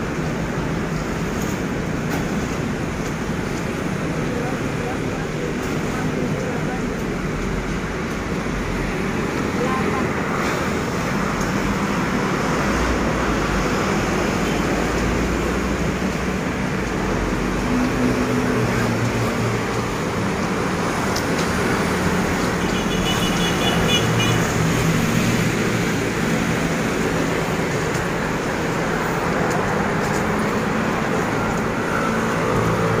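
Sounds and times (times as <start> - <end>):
road traffic noise: 0.0 - 33.0.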